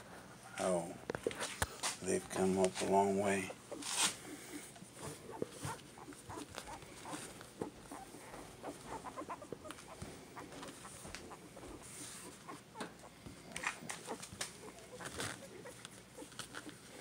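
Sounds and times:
puppies scuffling on a mat: 0.6s - 17.0s
puppies squeaking and grunting: 2.9s - 17.0s.

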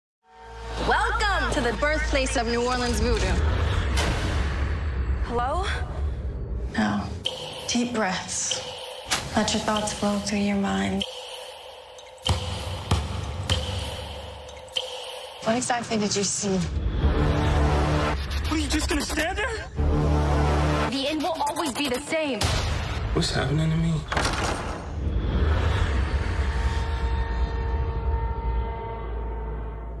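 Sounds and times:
steady held tones: 7.2s - 16.4s.

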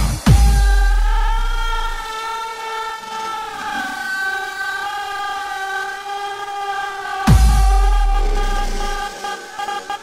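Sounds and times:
synthesizer pad chords: 0.0s - 10.0s.

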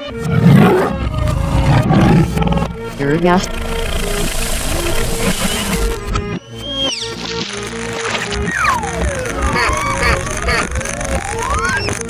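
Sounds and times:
cartoon big cat roar: 0.3s - 5.9s.

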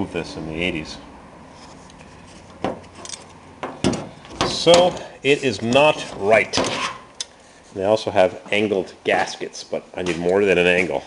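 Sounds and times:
metal clicks and knocks: 2.6s - 5.1s.

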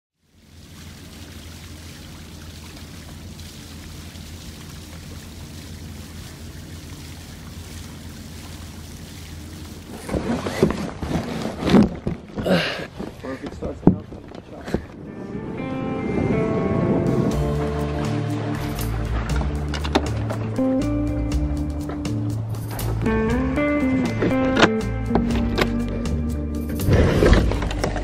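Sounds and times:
low hum: 15.0s - 28.0s.

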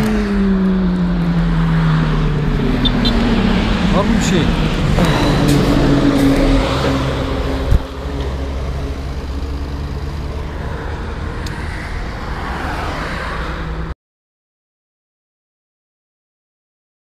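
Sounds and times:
passing car engine hum: 0.0s - 13.9s
traffic rumble: 0.0s - 14.0s
sharp thump: 7.6s - 7.9s.

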